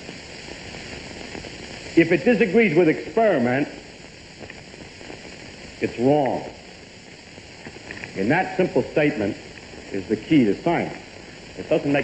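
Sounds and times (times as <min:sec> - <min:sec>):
recording background hiss: 0:00.0 - 0:12.0.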